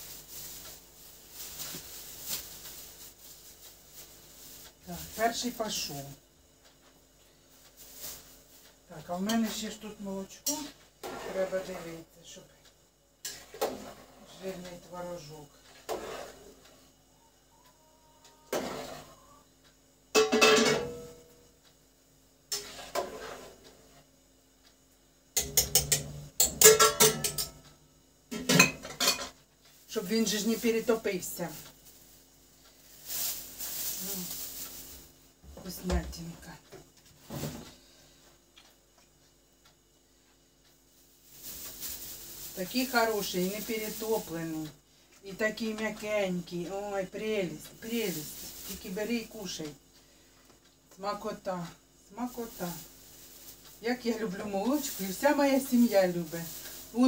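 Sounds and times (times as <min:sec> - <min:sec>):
plastic bag crinkling: 0:00.0 - 0:06.0, 0:07.5 - 0:09.8, 0:29.8 - 0:35.3, 0:41.0 - 0:44.6, 0:47.2 - 0:49.5, 0:52.2 - 0:57.0
metal utensils clanking on a pot: 0:20.2 - 0:21.0, 0:25.4 - 0:27.6, 0:28.4 - 0:29.4.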